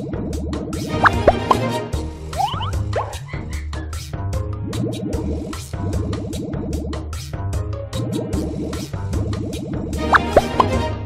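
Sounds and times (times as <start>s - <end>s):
looping game music: 0.9s - 3.8s, 10.0s - 11.0s
cartoon plopping blips: 1.0s - 1.6s, 2.4s - 3.2s.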